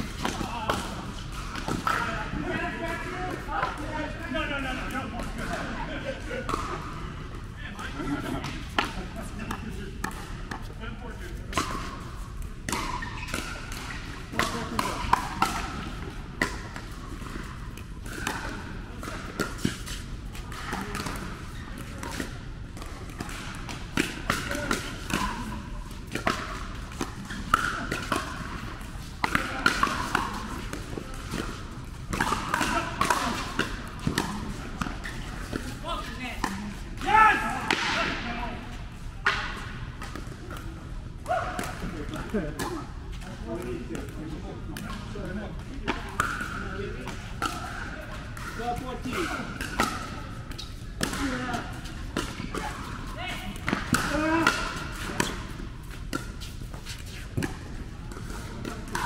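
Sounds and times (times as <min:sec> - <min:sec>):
ball bouncing on court: 0:06.4 - 0:06.9, 0:08.3 - 0:10.8, 0:11.5 - 0:38.4, 0:45.8 - 0:59.0
paddles hitting plastic ball: 0:11.4 - 0:38.1.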